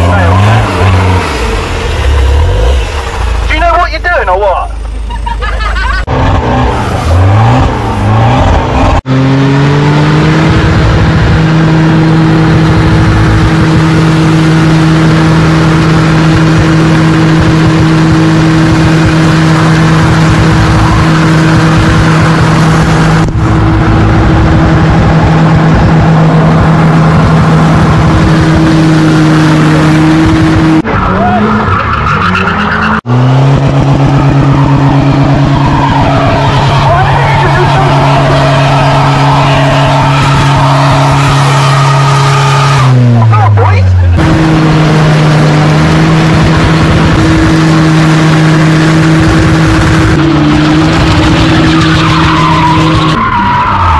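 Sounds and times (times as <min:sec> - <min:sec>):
car engine revving high: 0:00.0 - 0:03.8, 0:05.4 - 0:53.9
spinning tyre squealing: 0:11.6 - 0:23.2, 0:24.4 - 0:44.6, 0:45.2 - 0:53.9.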